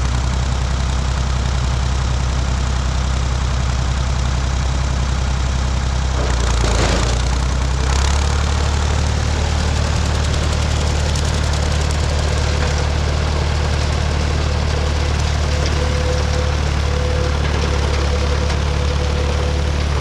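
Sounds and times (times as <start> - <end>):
tractor engine under load: 0.0 - 20.0
rotary cutter through grass: 6.2 - 18.5.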